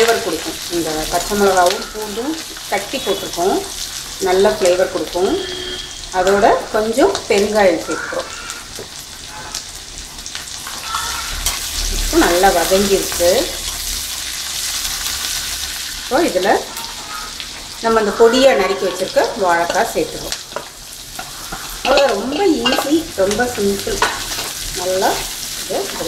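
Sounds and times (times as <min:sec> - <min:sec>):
chillies sizzling in hot oil: 0:00.0 - 0:26.0
metal spoon scraping pan: 0:21.2 - 0:23.1.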